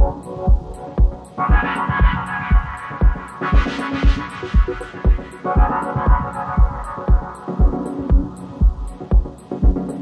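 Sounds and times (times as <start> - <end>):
hi-hat ticks: 0.0 - 10.0
kick drum: 0.0 - 10.0.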